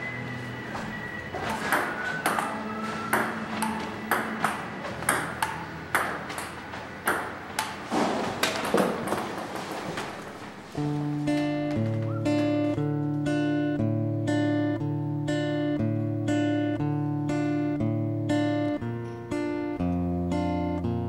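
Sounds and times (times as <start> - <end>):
table tennis ball pinging: 1.4 - 10.1.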